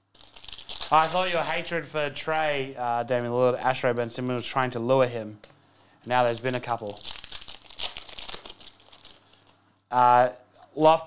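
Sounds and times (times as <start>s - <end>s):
foil wrapper being torn open: 0.0s - 1.4s, 6.3s - 9.6s.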